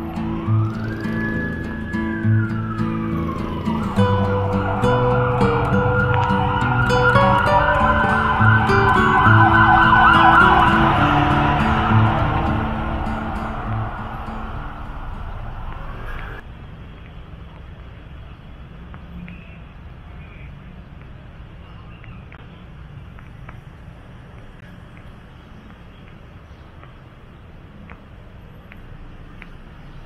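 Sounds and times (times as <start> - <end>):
background music: 0.0 - 15.1
warbling siren wail: 0.0 - 16.4.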